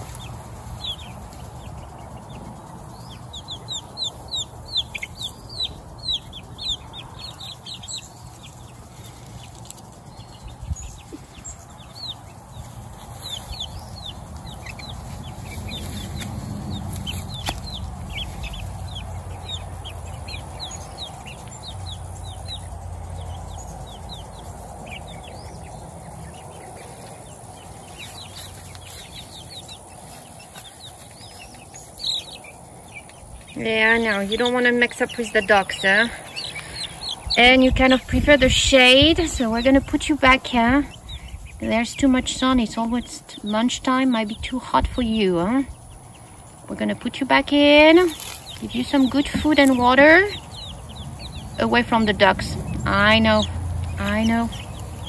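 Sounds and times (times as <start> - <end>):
chicks peeping: 0.0 - 55.0.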